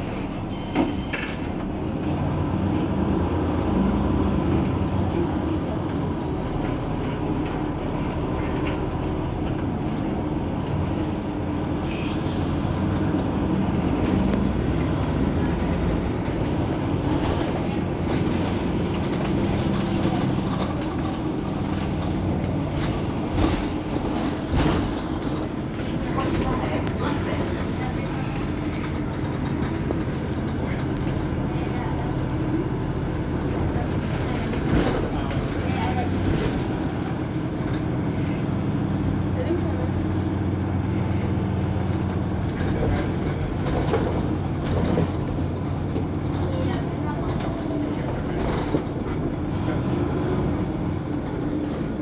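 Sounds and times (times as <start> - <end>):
bus engine humming: 0.0 - 52.0
background voices: 4.6 - 38.4.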